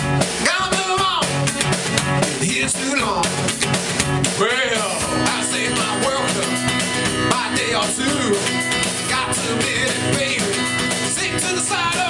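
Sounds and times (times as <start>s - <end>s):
acoustic guitar strummed: 0.0s - 12.0s
drum kit steady beat: 0.0s - 12.0s
man singing: 0.4s - 1.4s, 2.2s - 3.5s, 4.2s - 12.0s.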